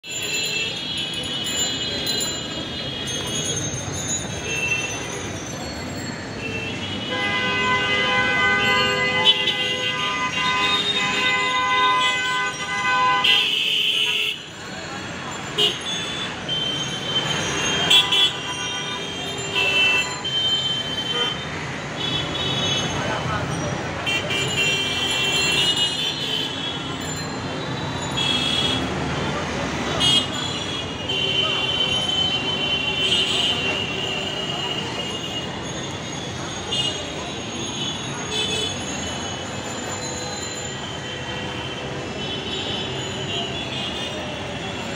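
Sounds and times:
heavy street traffic: 0.0s - 44.9s
vehicle horns honking: 6.4s - 14.5s, 15.5s - 23.0s, 28.0s - 28.9s, 29.9s - 39.0s.

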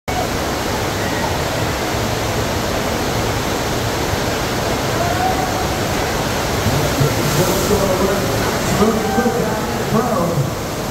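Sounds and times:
water rushing: 0.1s - 10.9s.

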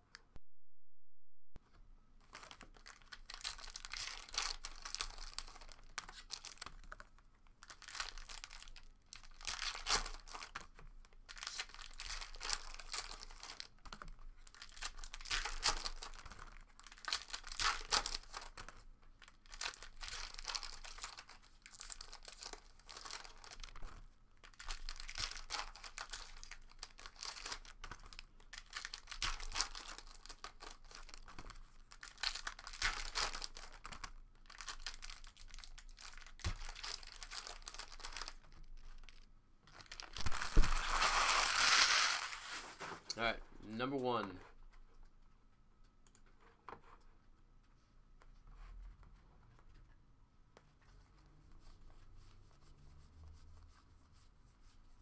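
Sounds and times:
foil wrappers torn and crinkled: 2.3s - 6.9s, 7.6s - 13.8s, 14.4s - 23.8s, 24.4s - 42.9s.

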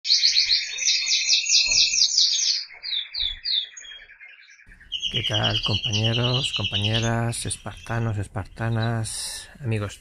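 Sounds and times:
finches chirping: 0.1s - 10.0s.

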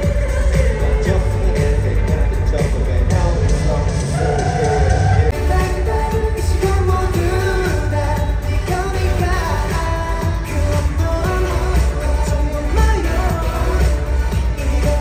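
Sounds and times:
pop song over sound system: 0.0s - 15.0s.

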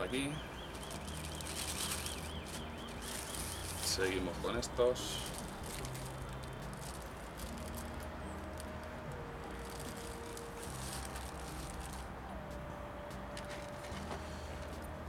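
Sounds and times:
hands rustling seedlings and plastic bag: 0.0s - 12.6s, 13.3s - 15.0s
steady background noise: 0.0s - 15.0s.

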